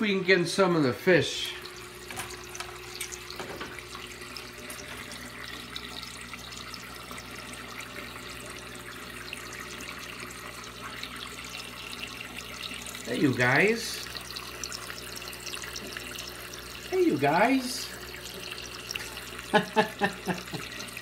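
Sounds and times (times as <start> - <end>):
aquarium water trickling and splashing: 0.0 - 21.0.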